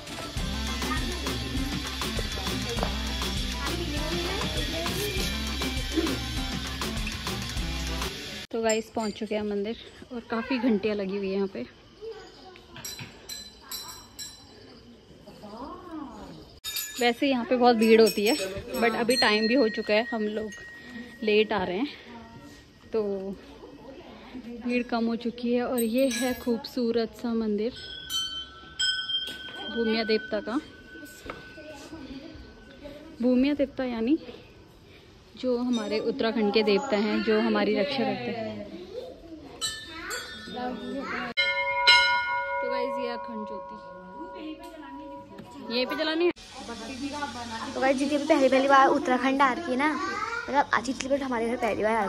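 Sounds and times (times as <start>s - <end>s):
brass bell ringing: 27.8s - 32.0s, 39.6s - 46.3s.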